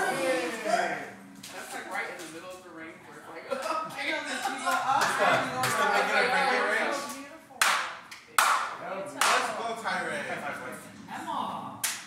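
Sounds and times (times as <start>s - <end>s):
sharp hand claps: 7.1s - 9.5s.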